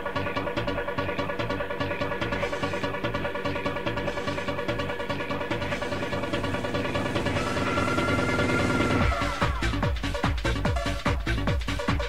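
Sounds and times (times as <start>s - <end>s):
fast-pulsing synth: 0.0s - 12.0s
steady bass: 0.0s - 12.0s.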